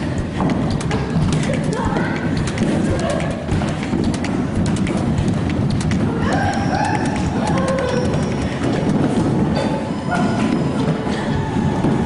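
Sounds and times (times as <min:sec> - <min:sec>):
bare feet running on wooden floor: 0:00.0 - 0:12.0.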